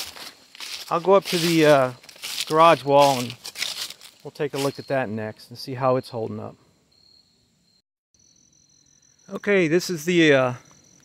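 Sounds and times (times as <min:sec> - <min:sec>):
high-pitched insect trilling: 0:06.9 - 0:11.0.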